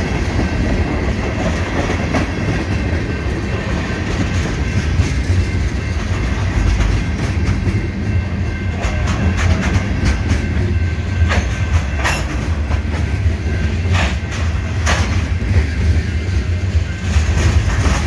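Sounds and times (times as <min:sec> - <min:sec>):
freight train wheels clacking: 0:00.0 - 0:18.0.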